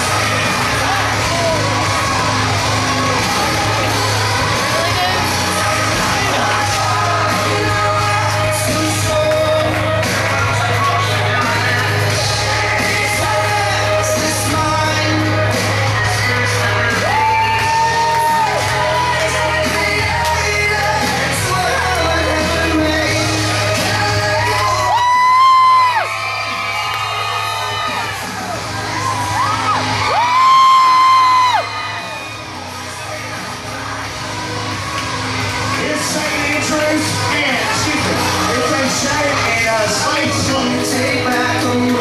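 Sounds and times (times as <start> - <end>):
steady bass line: 0.0 - 42.0
person singing: 4.5 - 26.1, 35.8 - 42.0.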